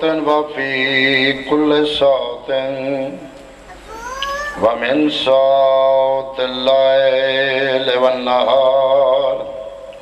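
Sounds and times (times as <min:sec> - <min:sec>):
man chanting through microphone: 0:00.0 - 0:03.4, 0:04.4 - 0:10.0.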